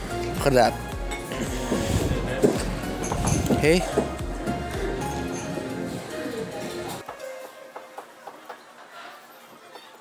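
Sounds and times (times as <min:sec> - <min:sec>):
murmur of room noise: 0:00.0 - 0:10.0.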